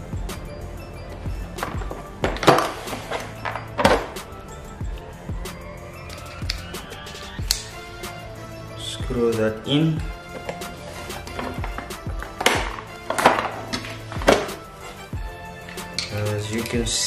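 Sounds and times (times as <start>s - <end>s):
background music: 0.0s - 17.0s
small tools knocking and clicking: 15.6s - 17.0s.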